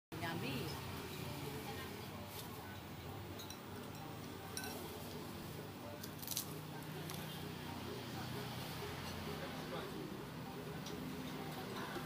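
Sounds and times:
murmur of background voices: 0:00.2 - 0:12.0
metal spoon clinking ceramic bowl: 0:03.4 - 0:04.8.

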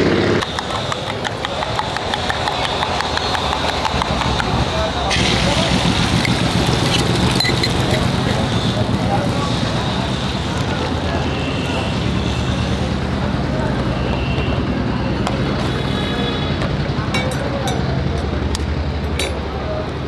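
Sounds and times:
street traffic hum: 0:00.0 - 0:20.0
egg sizzling in hot pan: 0:05.1 - 0:09.8.

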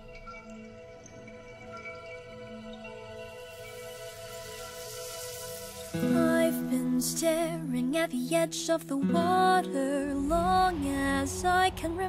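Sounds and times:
soft background music chords: 0:00.0 - 0:12.0
person singing: 0:06.0 - 0:12.0.

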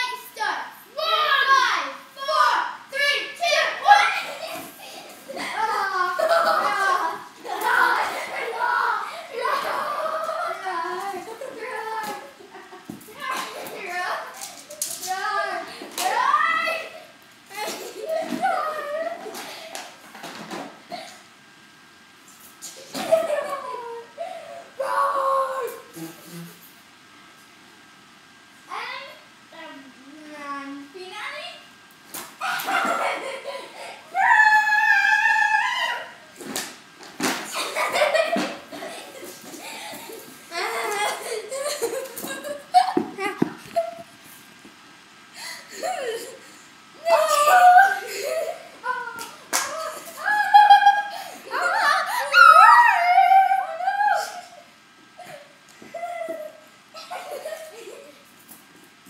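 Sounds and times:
girls shouting and squealing: 0:00.0 - 0:12.4, 0:13.1 - 0:19.4, 0:32.4 - 0:36.4, 0:47.0 - 0:57.7.

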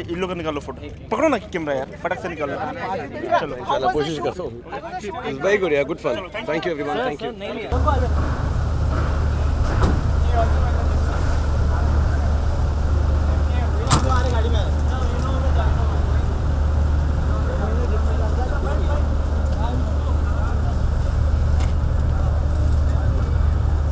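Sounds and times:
crowd chatter: 0:00.0 - 0:23.9
car engine humming: 0:07.7 - 0:23.9.

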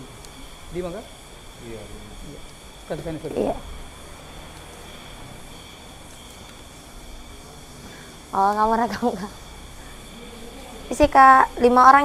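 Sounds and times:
faint steady high tones: 0:00.0 - 0:12.0.

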